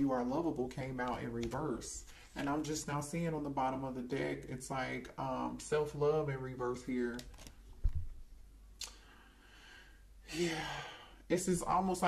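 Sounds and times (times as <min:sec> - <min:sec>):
person speaking: 0:00.0 - 0:08.1, 0:10.2 - 0:12.0.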